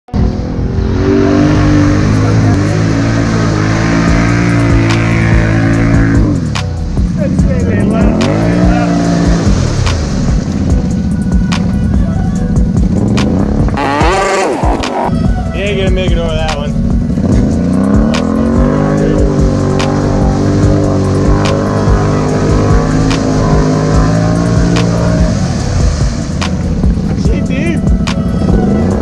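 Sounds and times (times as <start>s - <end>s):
atv engine revving: 0.1s - 29.0s.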